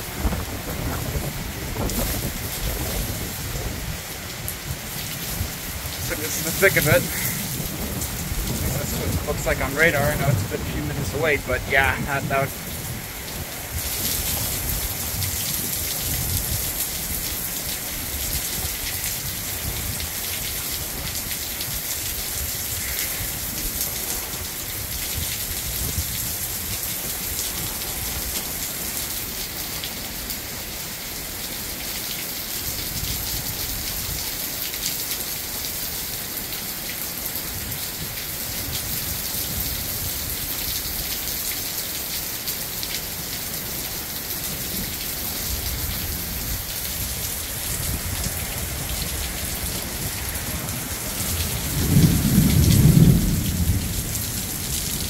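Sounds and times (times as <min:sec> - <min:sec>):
thunder rumble: 0:00.0 - 0:03.9, 0:05.3 - 0:16.8, 0:47.0 - 0:55.0
heavy rain falling: 0:00.0 - 0:55.0.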